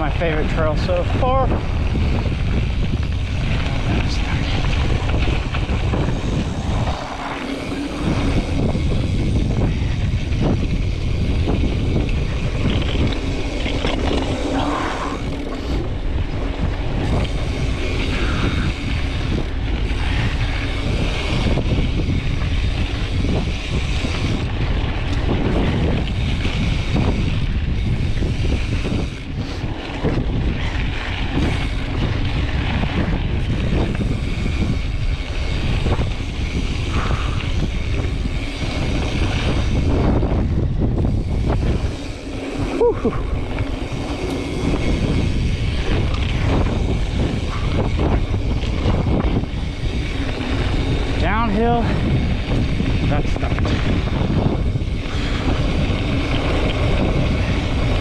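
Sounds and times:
bike tyres rolling on dirt: 0.0 - 58.0
wind buffeting microphone: 0.0 - 58.0.

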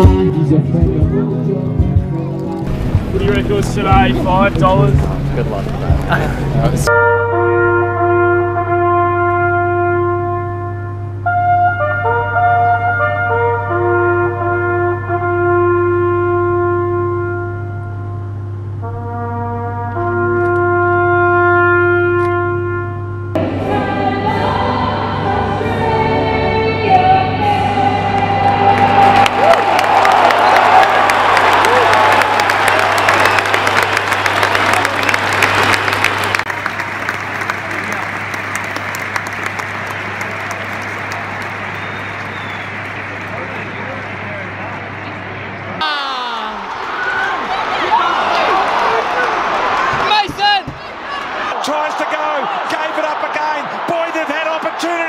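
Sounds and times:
huge crowd cheering: 28.2 - 55.0.

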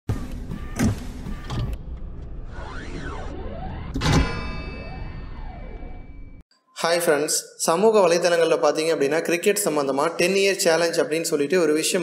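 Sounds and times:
mechanical whirs and swells: 1.4 - 6.4.

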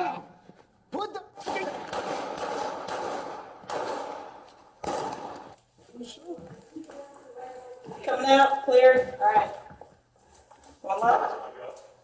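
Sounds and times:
gunshots: 1.4 - 5.6.

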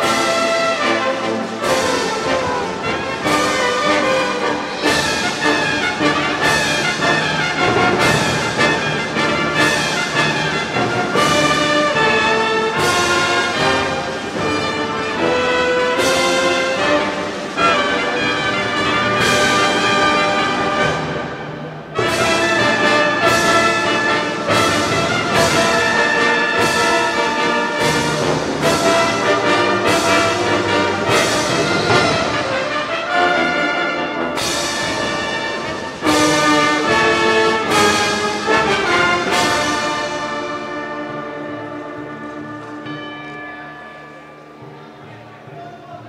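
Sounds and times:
brass section playing chords: 0.0 - 43.0.

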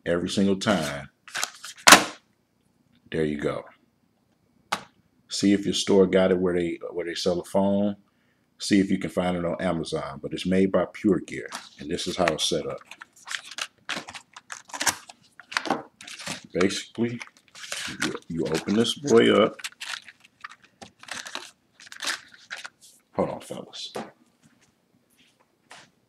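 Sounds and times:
package handling scrapes: 11.4 - 23.0.

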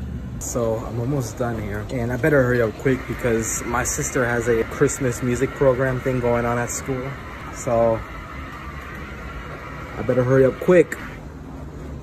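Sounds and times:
washing machines and dryers running: 0.0 - 12.0.

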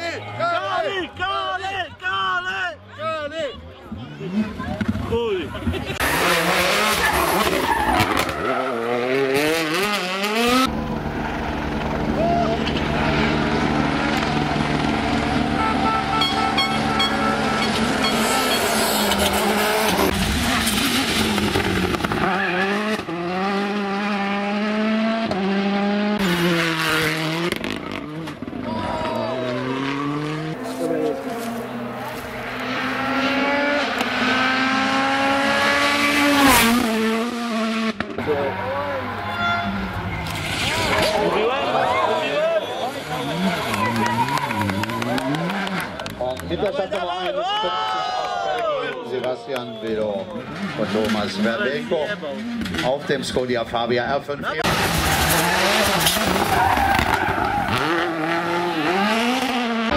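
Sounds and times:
rally car engines revving past: 4.0 - 46.6, 50.2 - 59.9.

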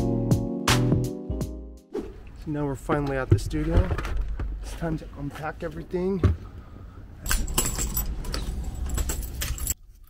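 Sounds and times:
keys jangling and clicking: 7.2 - 9.8.

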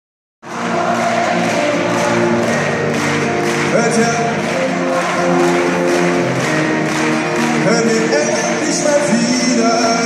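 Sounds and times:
acoustic band playing: 0.4 - 10.0
crowd noise: 0.4 - 10.0
person singing: 0.5 - 10.0.

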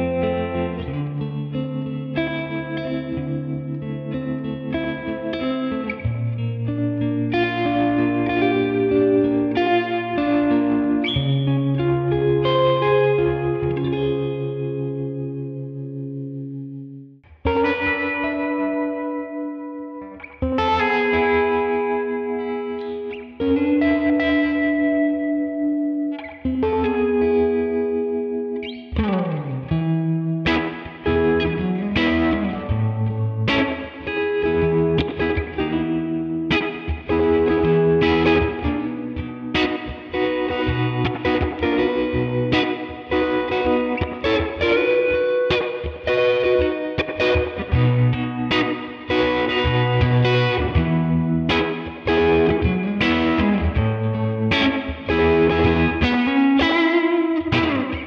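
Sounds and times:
electric guitar chords with tremolo: 0.0 - 58.0.

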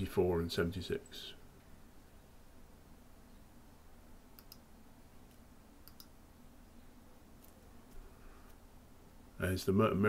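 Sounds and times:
computer mouse double-clicks: 4.4 - 4.6, 5.8 - 6.1.

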